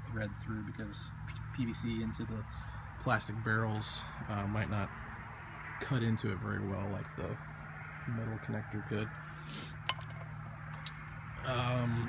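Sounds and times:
pipe fittings clinking: 9.9 - 10.3.

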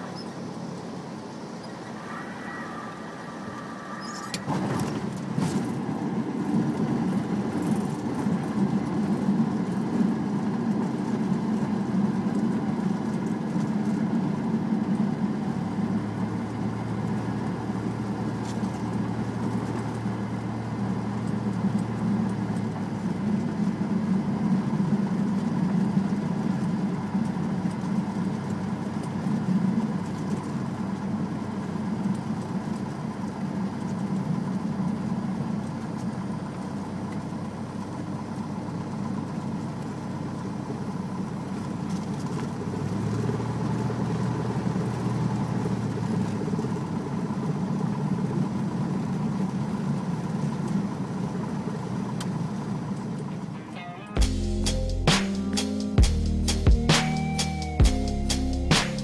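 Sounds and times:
propeller plane engine running: 0.0 - 59.0.

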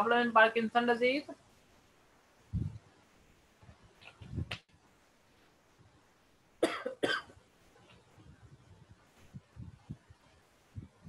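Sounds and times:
person coughing: 6.6 - 7.4.

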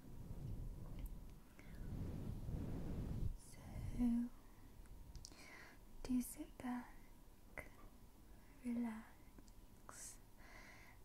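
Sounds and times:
woman whispering: 3.4 - 4.4, 6.0 - 7.0, 8.5 - 10.2.

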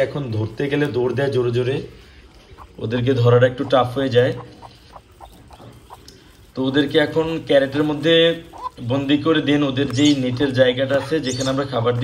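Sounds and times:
man talking: 0.0 - 2.0, 2.7 - 4.7, 6.5 - 12.0.

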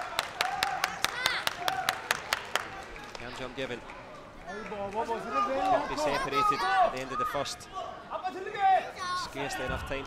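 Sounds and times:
spectators clapping in rhythm: 0.0 - 6.0.

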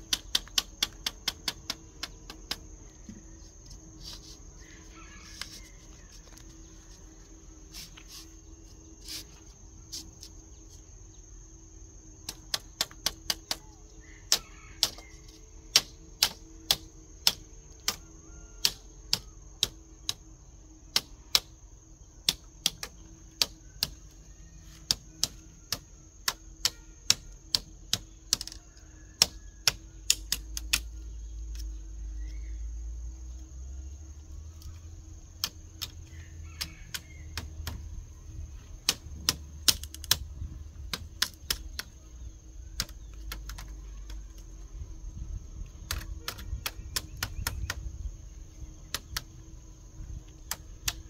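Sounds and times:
bamboo slats clicking and knocking: 0.0 - 10.5, 12.2 - 32.5, 34.2 - 44.6, 45.7 - 47.9, 48.8 - 49.4, 50.1 - 51.0.

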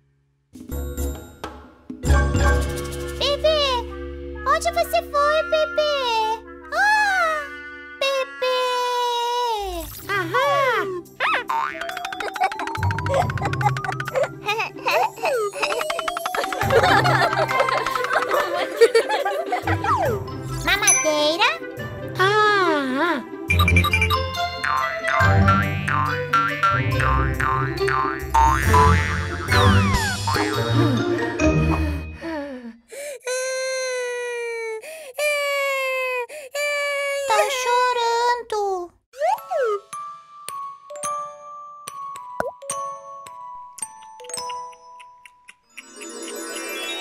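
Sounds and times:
bouncy children's music: 0.6 - 32.4, 39.2 - 47.0
springy boing sound effects: 24.6 - 30.6
cartoon falling whistle glide: 29.5 - 30.3.

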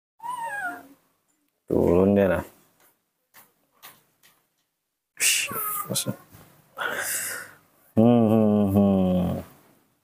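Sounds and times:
baby monkey call: 0.2 - 1.0, 5.4 - 6.0
person's low voice: 8.0 - 9.5.

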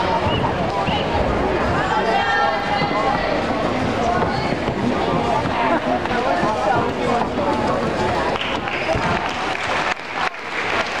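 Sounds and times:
crowd voices: 0.0 - 11.0
spectators clapping: 8.3 - 11.0.

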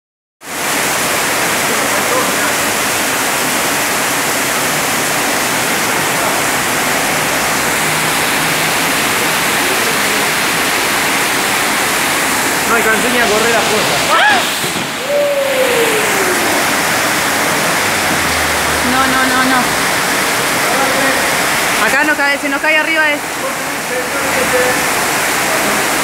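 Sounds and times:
rainwater pouring through roof: 0.4 - 26.0.

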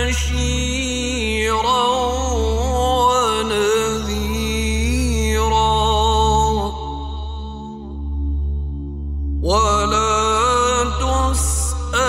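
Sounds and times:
person chanting melodically: 0.0 - 12.0.

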